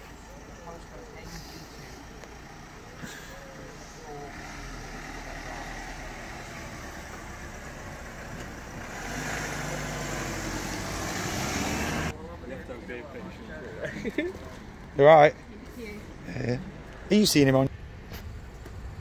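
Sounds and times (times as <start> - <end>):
vehicle engine humming: 0.0 - 19.0.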